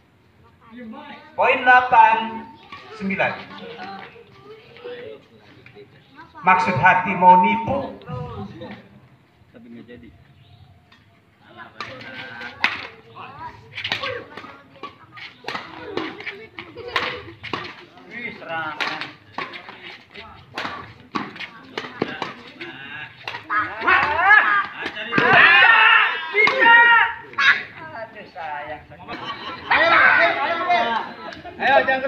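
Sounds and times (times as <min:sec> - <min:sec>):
people's voices: 0:00.4 - 0:09.2
rackets striking shuttlecock: 0:13.8 - 0:17.8, 0:20.5 - 0:22.6, 0:26.4 - 0:26.7.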